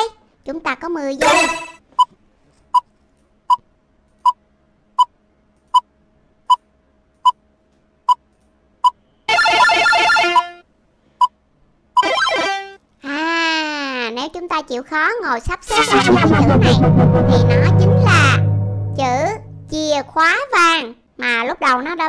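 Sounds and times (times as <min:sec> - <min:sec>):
countdown timer beeps: 0:01.2 - 0:01.8, 0:15.8 - 0:20.2
synthesized sound effect: 0:01.2 - 0:01.8, 0:15.7 - 0:20.2.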